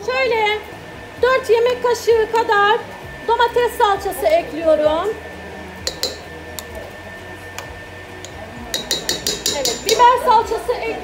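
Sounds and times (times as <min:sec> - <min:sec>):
metal spoon clinking on bowl and jar: 0:05.9 - 0:06.3, 0:08.2 - 0:10.1.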